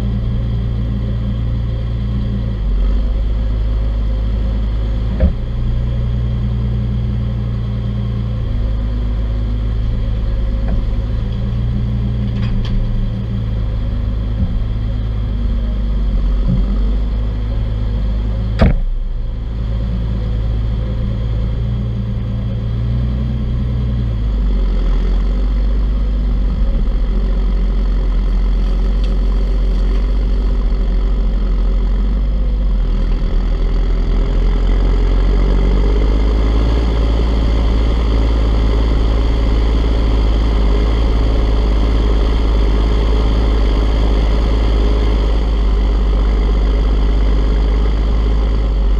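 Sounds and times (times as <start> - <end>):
tractor diesel engine running: 0.0 - 48.9
sharp knock: 18.6 - 18.9.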